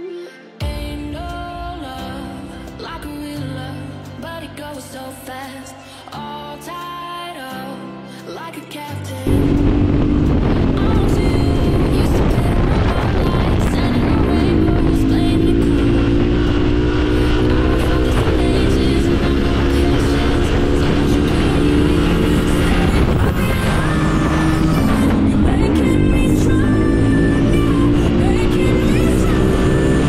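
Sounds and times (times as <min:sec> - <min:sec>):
background music: 0:00.0 - 0:30.0
motorcycle engine cruising: 0:09.2 - 0:30.0.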